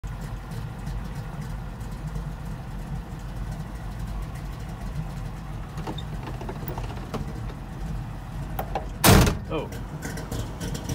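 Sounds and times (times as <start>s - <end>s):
car engine idling: 0.0s - 10.9s
short loud thump: 9.0s - 9.5s.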